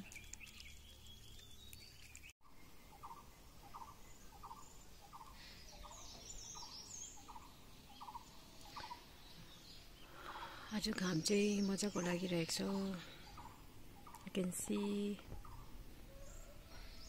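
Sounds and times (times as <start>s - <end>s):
faint outdoor ambience: 0.0s - 17.0s
higher bird chirps: 0.0s - 17.0s.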